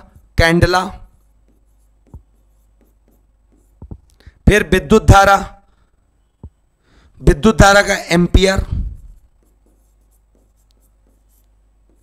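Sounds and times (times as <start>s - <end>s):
chalk scratching on chalkboard: 0.0s - 4.2s, 8.6s - 12.0s.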